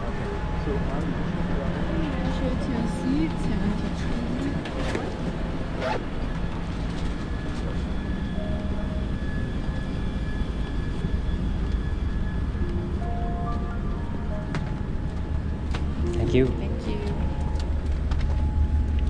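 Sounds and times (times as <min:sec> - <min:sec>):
soft music with held notes: 0:12.5 - 0:19.0.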